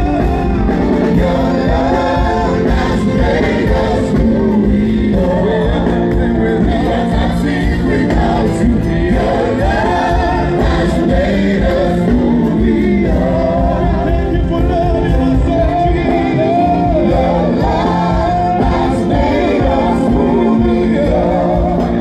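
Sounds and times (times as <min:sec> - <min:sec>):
electronic keyboard: 0:00.0 - 0:22.0
group singing gospel music: 0:00.0 - 0:22.0.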